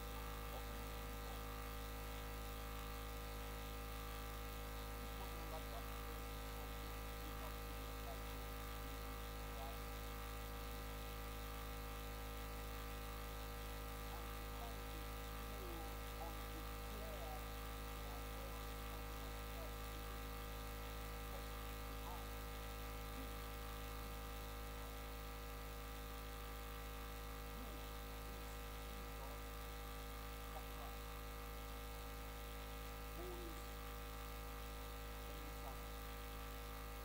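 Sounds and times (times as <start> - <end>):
electrical mains hum: 0.0 - 37.0.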